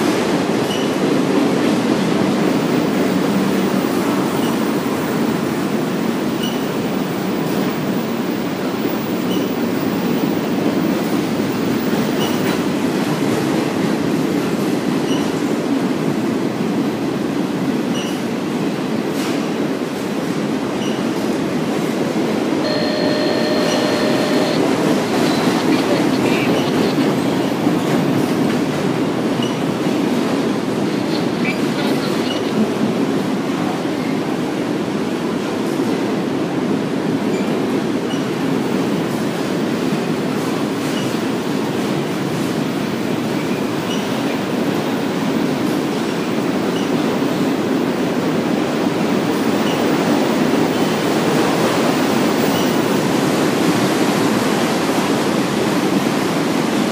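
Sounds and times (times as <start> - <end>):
train wheels rumbling on rail: 0.0 - 56.9
brief train squeal: 0.7 - 1.0, 6.4 - 6.7, 9.3 - 9.6, 15.1 - 15.3, 17.9 - 18.2, 20.8 - 21.0, 22.6 - 24.6, 43.4 - 44.1, 52.4 - 52.8.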